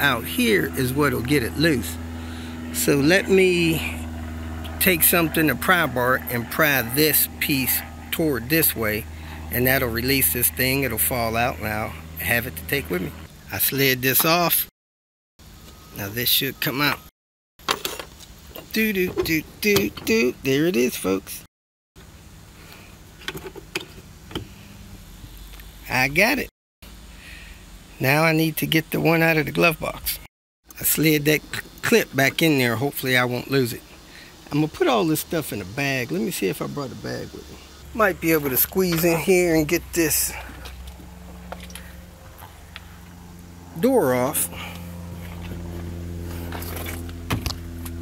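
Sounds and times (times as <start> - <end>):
steady low hum: 0.0 - 14.7, 18.5 - 48.0
truck engine idling: 36.1 - 47.9.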